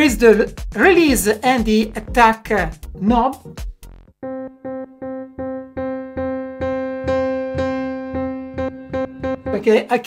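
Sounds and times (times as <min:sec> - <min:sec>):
piano repeating single note: 0:04.2 - 0:10.0.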